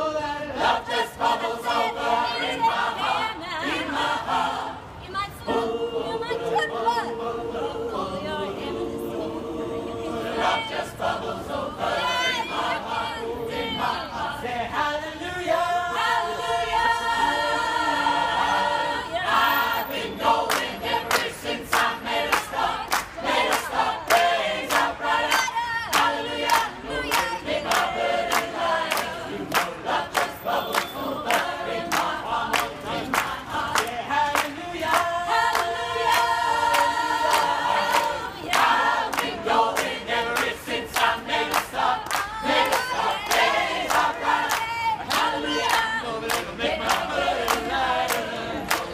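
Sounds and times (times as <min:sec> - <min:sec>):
mixed choir singing unaccompanied: 0:00.0 - 0:48.9
people clapping on the beat: 0:19.3 - 0:48.9.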